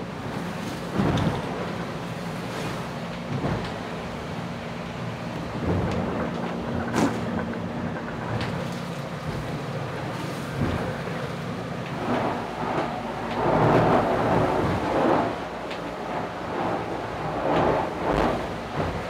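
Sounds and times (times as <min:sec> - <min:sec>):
low steady hum: 0:00.0 - 0:19.0
rush of wind and water: 0:00.0 - 0:19.0
hull slamming into waves: 0:00.2 - 0:04.3, 0:05.4 - 0:19.0.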